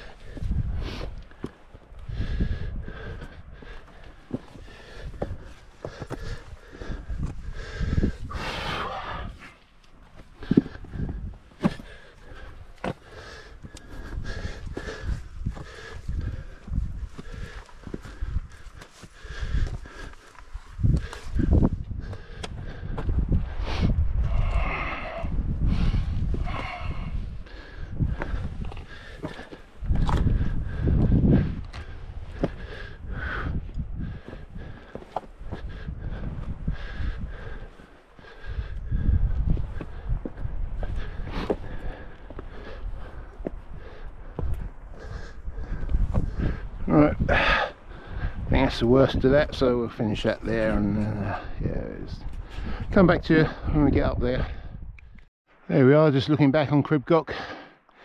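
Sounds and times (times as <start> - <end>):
boots scuffing on rock: 11.5 - 11.9, 12.7 - 13.1, 34.9 - 35.3.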